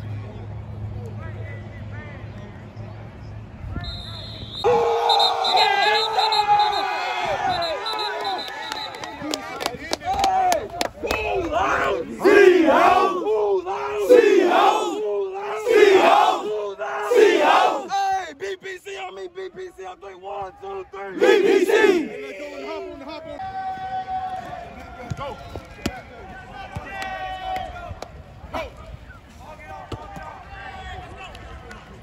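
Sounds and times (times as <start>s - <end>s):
team shouting a chant: 4.6s - 8.0s, 10.1s - 24.7s.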